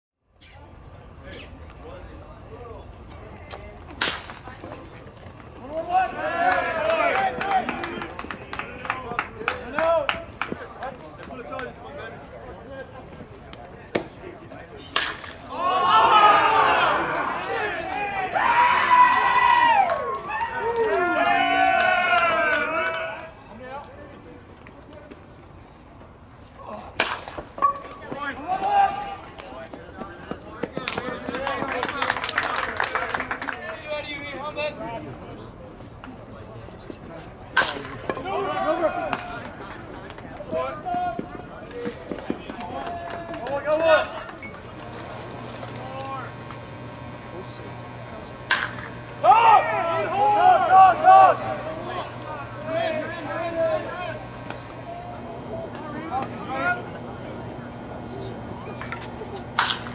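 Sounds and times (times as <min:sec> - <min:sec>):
people shouting and cheering: 0:05.6 - 0:10.3, 0:15.4 - 0:23.5, 0:27.7 - 0:29.4, 0:38.1 - 0:39.7, 0:40.5 - 0:44.6, 0:49.0 - 0:59.9
scattered hand claps: 0:06.4 - 0:11.7, 0:30.3 - 0:33.8, 0:39.1 - 0:40.7, 0:41.6 - 0:44.8
baseball bat hitting ball: 0:14.9 - 0:15.4, 0:48.4 - 0:49.0, 0:59.6 - 0:59.9.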